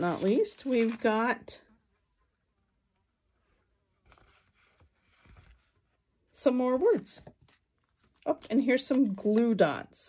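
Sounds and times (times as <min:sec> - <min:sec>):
card sheet rustling: 0:00.0 - 0:01.4, 0:06.8 - 0:08.9.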